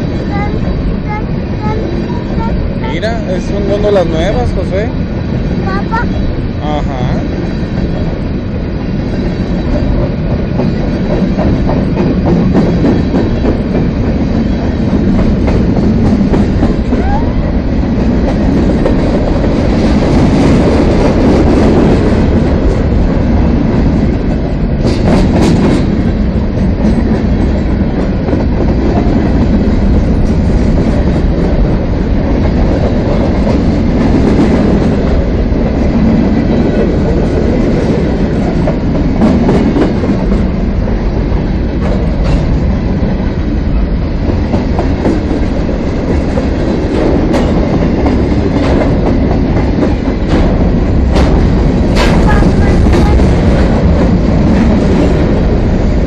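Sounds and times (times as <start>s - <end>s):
freight train wheels clattering: 7.3s - 56.0s.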